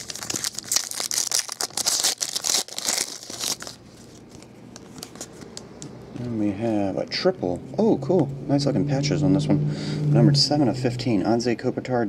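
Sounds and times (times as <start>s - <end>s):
foil wrapper tearing and crinkling: 0.0s - 5.4s.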